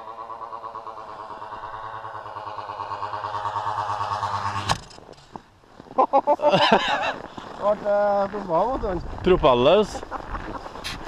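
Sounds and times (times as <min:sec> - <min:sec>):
model plane engine high revs: 0:00.0 - 0:05.1.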